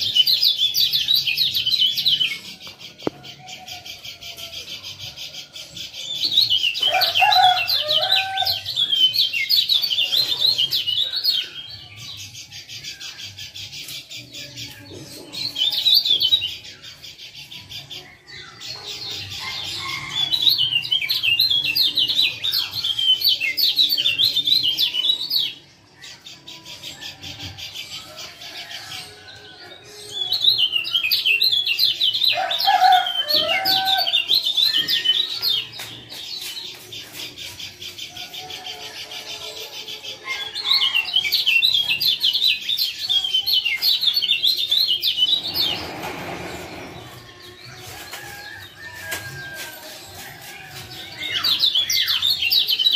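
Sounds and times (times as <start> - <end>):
bird chirping calls: 0.0 - 52.9.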